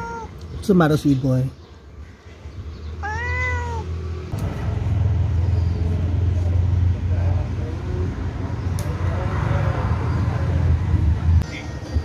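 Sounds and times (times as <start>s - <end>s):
cat meowing: 0.0s - 0.4s, 3.0s - 4.0s
street traffic rumble: 0.0s - 12.0s.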